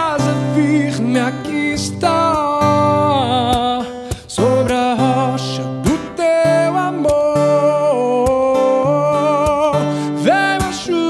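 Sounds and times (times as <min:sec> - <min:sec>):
man singing lead: 0:00.0 - 0:11.0.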